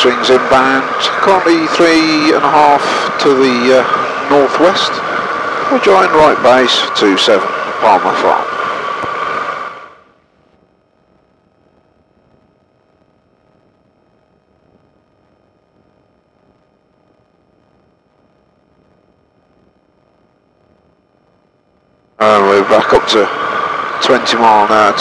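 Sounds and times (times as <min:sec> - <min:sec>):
microlight engine: 0:00.0 - 0:10.1, 0:22.2 - 0:25.0
faint electrical whine and hiss: 0:00.0 - 0:25.0.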